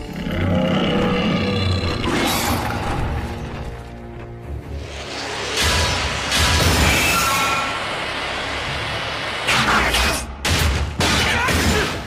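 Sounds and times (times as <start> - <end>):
mechanical rushing hum: 3.9 - 9.9.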